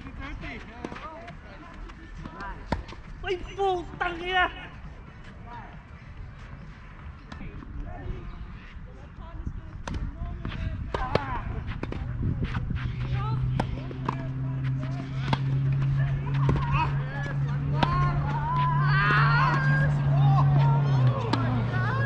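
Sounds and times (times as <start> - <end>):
faint voices: 4.7 - 22.0
tennis racket striking ball: 9.8 - 21.7.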